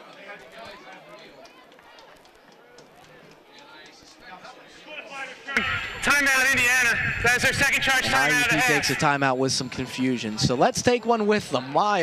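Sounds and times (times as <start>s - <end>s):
faint voices of people talking: 0.0s - 12.0s.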